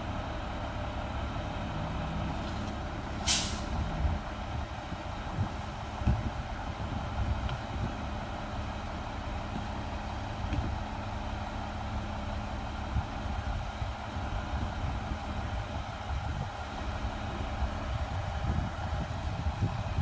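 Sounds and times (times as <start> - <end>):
garbage truck engine idling: 0.0 - 20.0.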